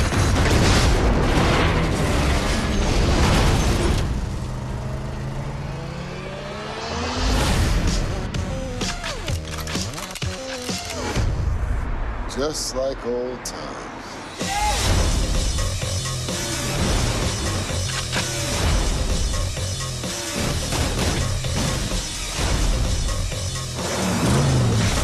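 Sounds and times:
loud explosion rumbling: 0.0s - 2.0s
trailer music score: 0.0s - 25.0s.

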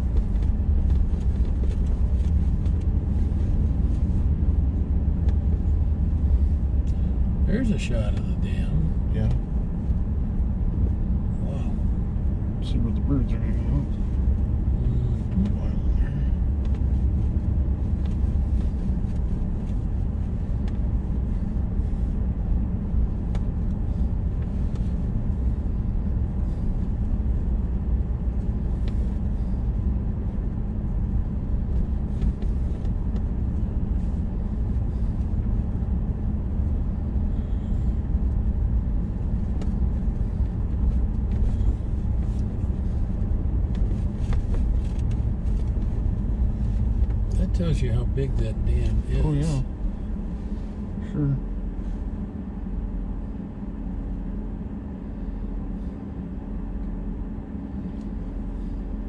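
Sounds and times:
vehicle engine and tyres rumbling: 0.0s - 59.0s.

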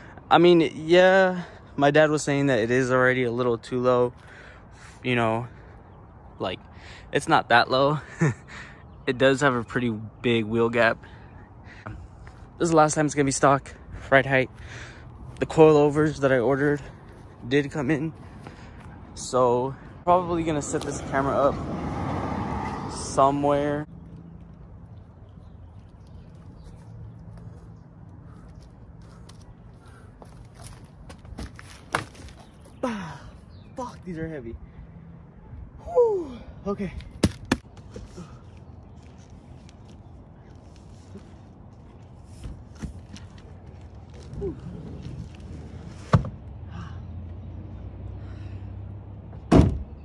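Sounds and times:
low outdoor hum: 0.0s - 49.6s
footsteps approaching: 25.8s - 32.7s
car trunk lid slamming: 49.5s - 49.8s.

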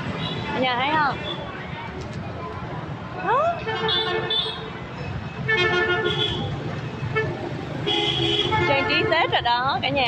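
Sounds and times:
vehicle horns honking: 3.6s - 4.8s, 5.4s - 9.3s.

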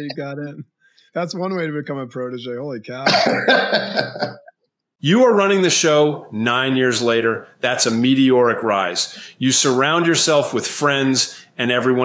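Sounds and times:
man laughing heartily: 3.1s - 4.5s.

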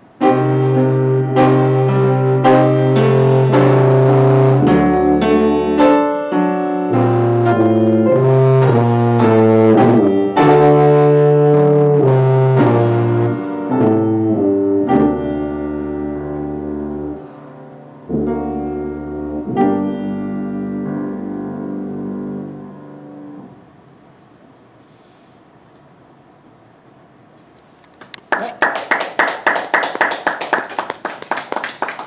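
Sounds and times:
piano accompaniment: 0.0s - 23.8s
tuba melody: 0.2s - 23.7s.

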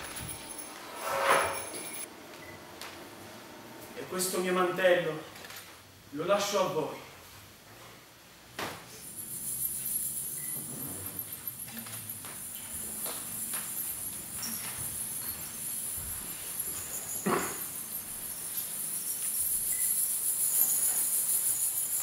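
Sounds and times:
high shimmering chime: 0.0s - 2.1s, 9.0s - 22.0s
footsteps on wooden stage: 11.8s - 17.5s.

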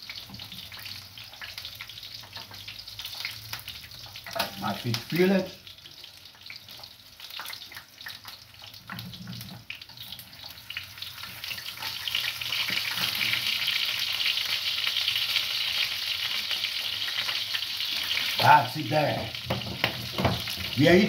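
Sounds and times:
food sizzling in a pan: 0.0s - 21.0s
metal utensils clicking on pan: 4.1s - 4.7s.

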